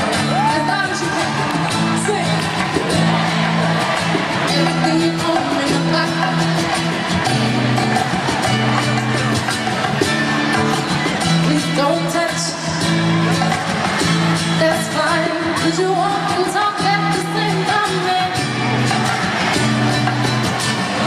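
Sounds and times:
amplified band playing: 0.0s - 21.0s
person singing: 4.2s - 8.6s, 11.4s - 13.0s, 14.6s - 19.8s.

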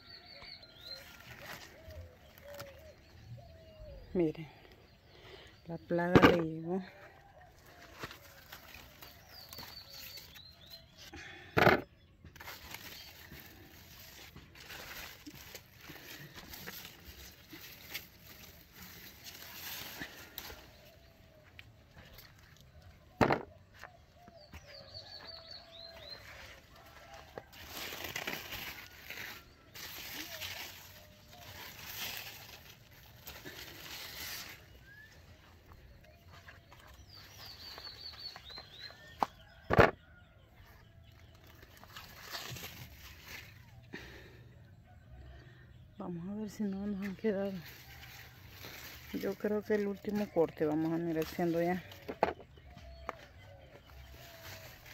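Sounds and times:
vines and leaves rustling: 0.1s - 5.4s, 6.0s - 11.4s, 12.4s - 44.4s, 46.0s - 54.9s.

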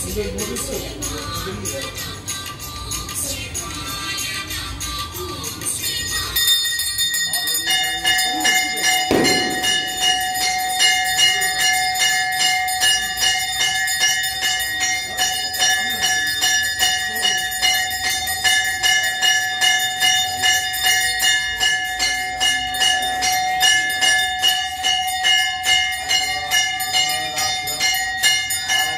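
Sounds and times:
bells ringing rapidly: 0.0s - 28.9s.

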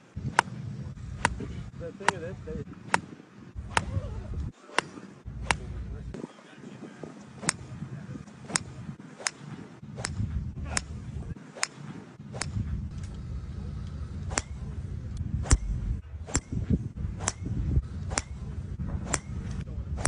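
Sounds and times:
low rumble: 0.0s - 4.5s, 5.2s - 6.2s, 9.8s - 11.4s, 12.2s - 20.0s
golf clubs striking balls: 0.2s - 6.2s, 7.2s - 20.0s.

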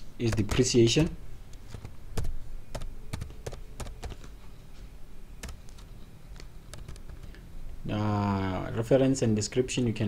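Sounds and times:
computer keyboard typing: 0.2s - 4.4s, 5.4s - 7.4s.

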